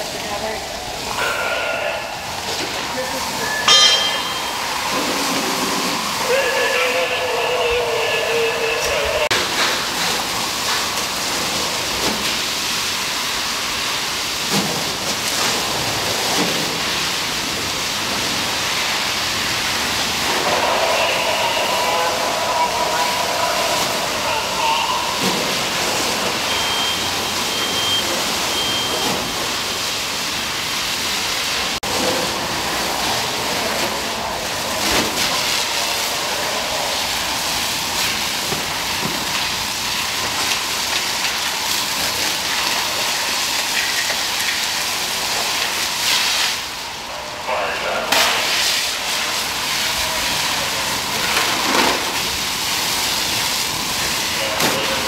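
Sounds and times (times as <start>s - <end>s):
water stream hissing: 0.0s - 55.0s
short high beeps: 3.4s - 4.7s, 26.4s - 29.4s
water splashing on concrete: 8.8s - 46.8s, 48.1s - 55.0s.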